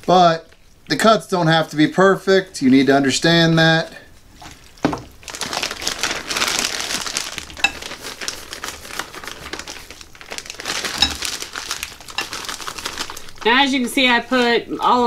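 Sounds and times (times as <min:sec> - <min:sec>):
plastic bag crinkling: 0:04.3 - 0:15.0.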